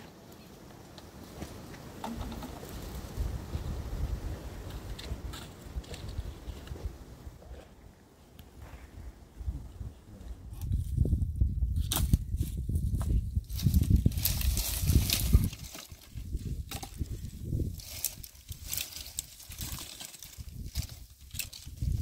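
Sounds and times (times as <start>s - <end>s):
dry branches rustling and snapping: 0.4s - 3.2s, 4.6s - 7.0s, 11.7s - 22.0s
twigs crackling: 13.4s - 22.0s.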